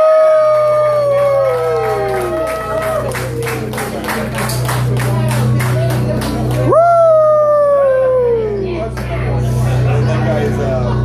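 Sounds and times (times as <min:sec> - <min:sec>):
long howl: 0:00.0 - 0:03.0.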